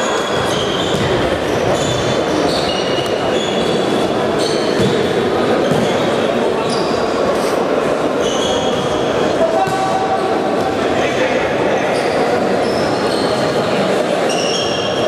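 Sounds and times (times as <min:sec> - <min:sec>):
shoes squeaking on court floor: 0:00.0 - 0:07.6, 0:08.2 - 0:09.8, 0:11.8 - 0:13.6
players' voices: 0:00.0 - 0:15.0
reverberant hall din: 0:00.0 - 0:15.0.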